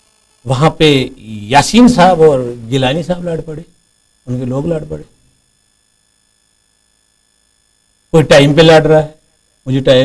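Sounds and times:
high-pitched electronic whine: 0:00.0 - 0:10.0.

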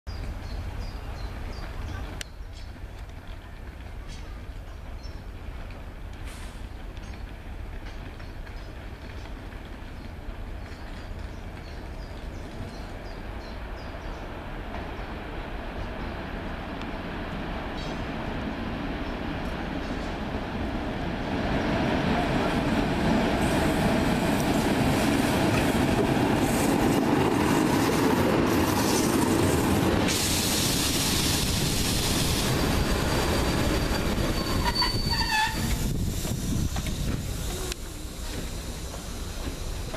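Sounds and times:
train rumble passing: 0:00.1 - 0:39.9
wheel squeal: 0:32.4 - 0:37.7.

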